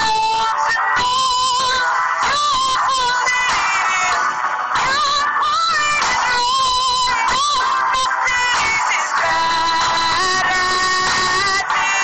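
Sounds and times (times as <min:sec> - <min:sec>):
musical accompaniment: 0:00.0 - 0:12.0.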